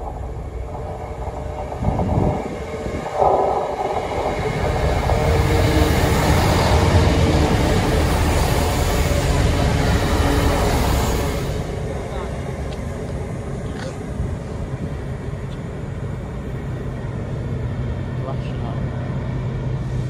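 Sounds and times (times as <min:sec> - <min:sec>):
passenger train passing: 0:00.0 - 0:20.0
train wheels on rails: 0:00.0 - 0:20.0.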